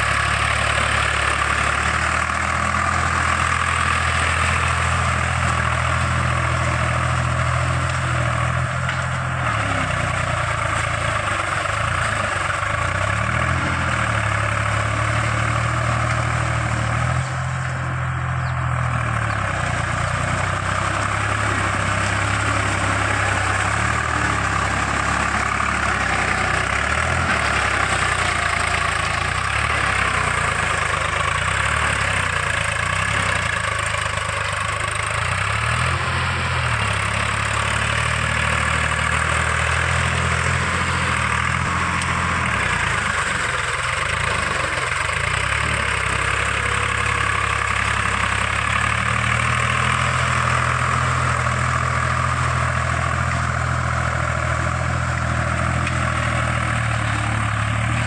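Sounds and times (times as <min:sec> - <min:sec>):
steel wheels churning mud: 0:00.0 - 0:18.1, 0:18.7 - 0:58.0
tractor diesel engine running: 0:00.0 - 0:58.0.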